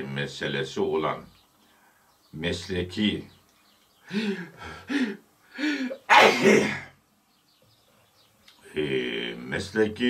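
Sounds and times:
man clearing his throat: 0:06.1 - 0:06.9.

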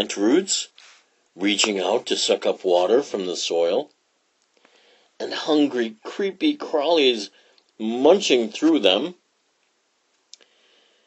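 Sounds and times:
person speaking: 0:00.0 - 0:03.9, 0:05.2 - 0:09.2.

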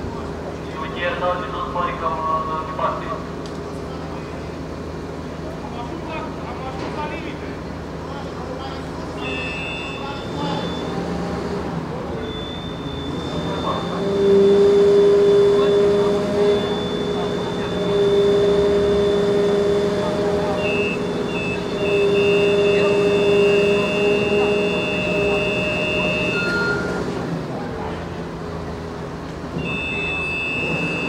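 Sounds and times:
engine hum: 0:07.4 - 0:31.0
hydraulic ladder mechanical whine: 0:09.0 - 0:27.6, 0:29.4 - 0:31.0.

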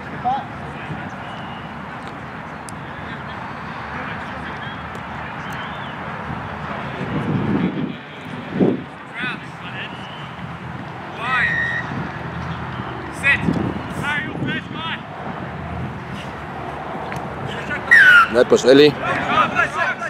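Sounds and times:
players shouting calls: 0:00.0 - 0:06.1, 0:09.0 - 0:15.2, 0:17.1 - 0:20.0
outdoor background hubbub: 0:00.0 - 0:20.0.

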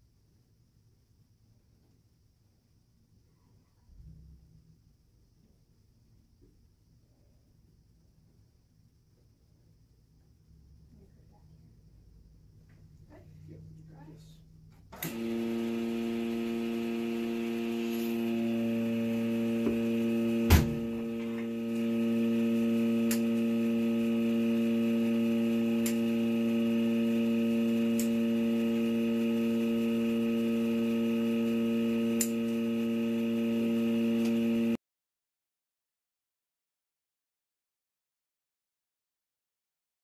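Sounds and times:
loud electrical hum: 0:12.1 - 0:34.8.

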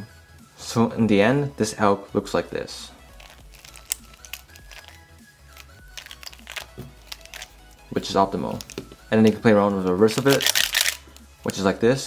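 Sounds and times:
soft background music: 0:00.0 - 0:12.0
plastic puzzle clicks: 0:03.2 - 0:07.5.

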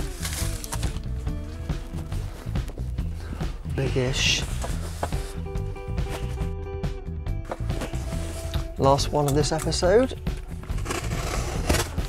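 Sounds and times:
music with pulsing bass: 0:00.0 - 0:10.9.

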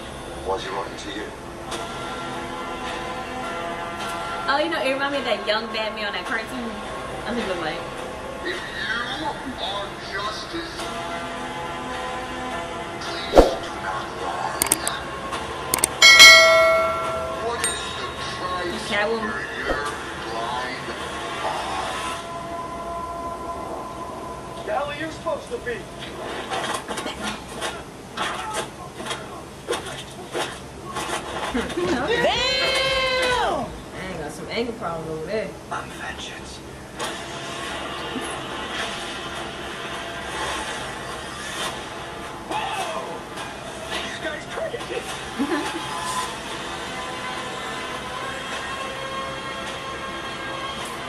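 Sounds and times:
loud bell-like strike: 0:15.9 - 0:18.3.

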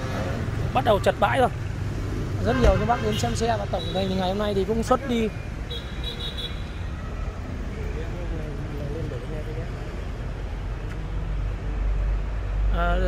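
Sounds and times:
low rumble of vehicles: 0:00.0 - 0:13.0
faint voices talking: 0:06.9 - 0:11.6.

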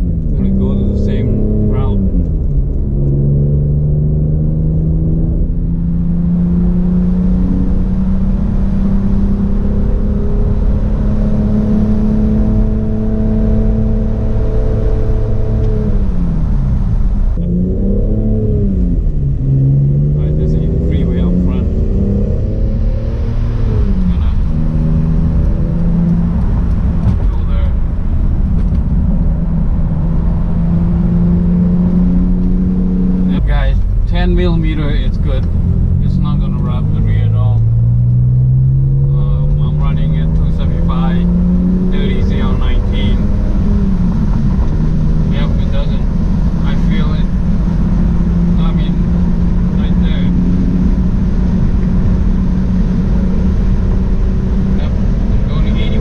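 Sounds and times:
car engine drone: 0:00.0 - 0:56.0
road noise: 0:00.0 - 0:56.0.

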